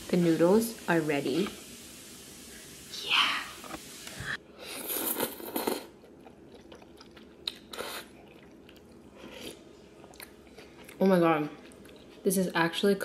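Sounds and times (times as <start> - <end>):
person slurping noodles: 4.6 - 5.9
chewing: 4.9 - 12.2.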